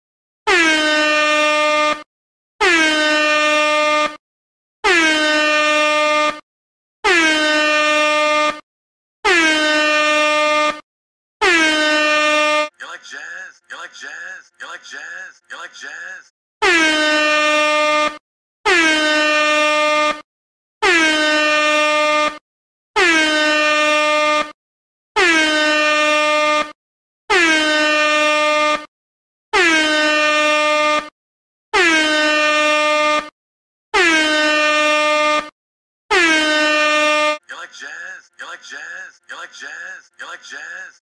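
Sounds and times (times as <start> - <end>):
air horn blasts: 0.5 - 4.2, 4.8 - 6.4, 7.0 - 8.6, 9.2 - 10.8, 11.4 - 12.7, 16.6 - 20.2, 20.8 - 22.4, 23.0 - 24.6, 25.2 - 28.9, 29.5 - 31.1, 31.7 - 33.3, 33.9 - 35.5, 36.1 - 37.4.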